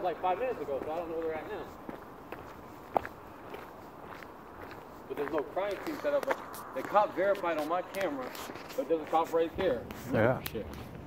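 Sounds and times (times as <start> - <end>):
footsteps on paved street: 0.0 - 11.0.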